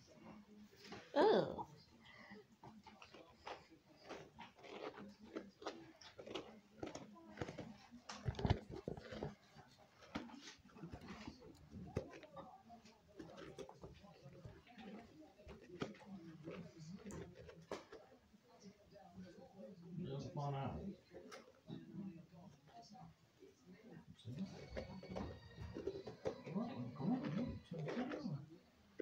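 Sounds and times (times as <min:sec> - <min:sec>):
faint indistinct voices: 0:00.0 - 0:29.0.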